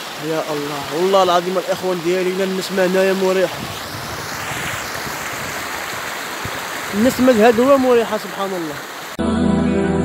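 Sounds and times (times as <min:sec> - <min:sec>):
water rushing over rocks: 0:00.0 - 0:09.2.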